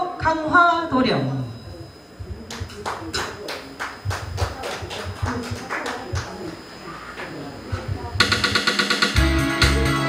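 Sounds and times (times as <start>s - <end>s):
hand claps from small audience: 2.4s - 6.6s.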